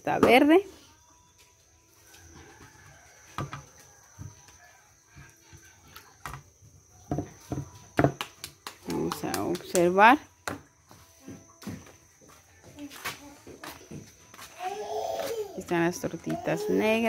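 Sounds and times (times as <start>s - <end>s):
faint background noise: 0.0s - 17.0s.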